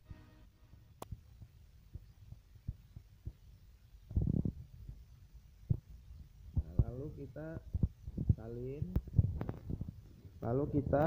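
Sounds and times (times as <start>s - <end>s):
microphone thumps: 4.1s - 5.0s, 5.6s - 11.0s.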